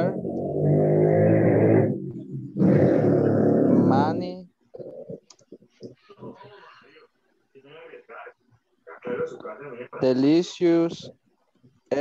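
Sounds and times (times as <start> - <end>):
distorted voice over video call: 0.0 - 12.0.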